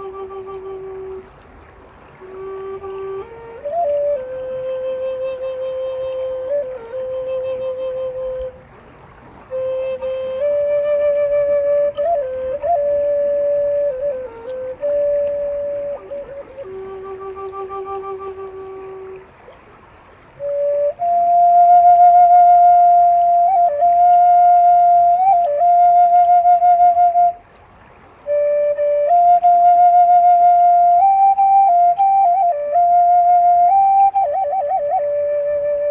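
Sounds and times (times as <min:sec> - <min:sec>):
flute playing slow melody: 0:00.0 - 0:35.9.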